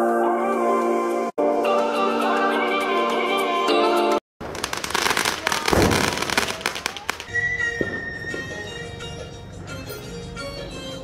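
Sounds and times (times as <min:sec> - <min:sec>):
fireworks crackling pops: 0:04.4 - 0:08.2
firework bang: 0:04.4 - 0:08.4.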